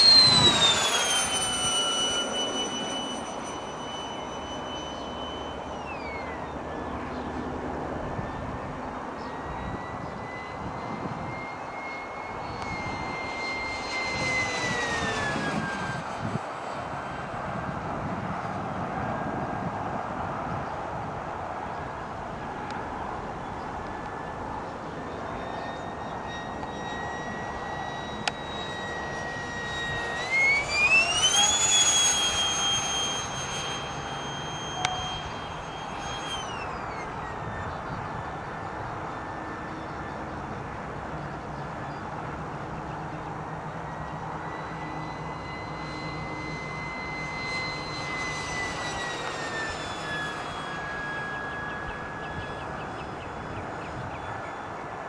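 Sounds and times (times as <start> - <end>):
electric ducted fan whining: 0.0 - 55.0.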